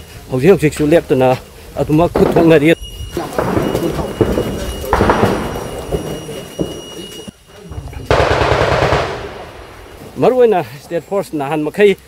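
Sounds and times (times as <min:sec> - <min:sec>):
distant gunshots echoing: 0:02.1 - 0:02.6, 0:03.2 - 0:06.8, 0:08.1 - 0:10.2.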